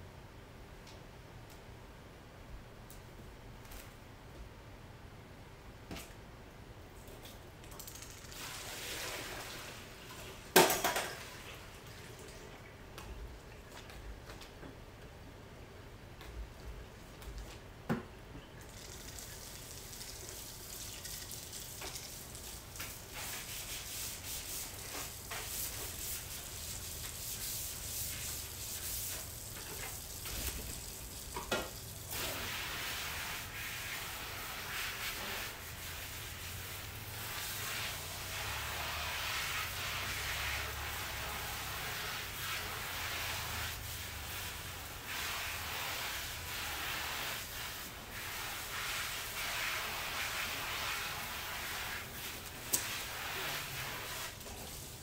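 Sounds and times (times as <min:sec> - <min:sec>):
tap running into sink: 0:10.5 - 0:11.3, 0:31.3 - 0:31.8.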